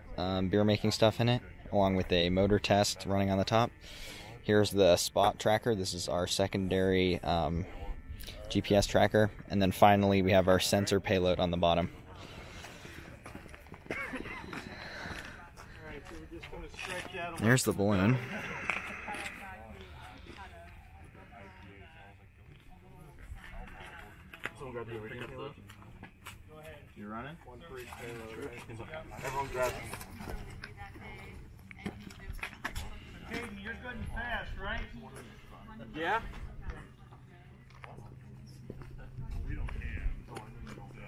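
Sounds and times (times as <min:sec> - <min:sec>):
faint voices of people: 0:00.0 - 0:05.8, 0:06.8 - 0:41.0
outdoor background noise: 0:00.0 - 0:41.0
people talking quietly: 0:00.0 - 0:41.0.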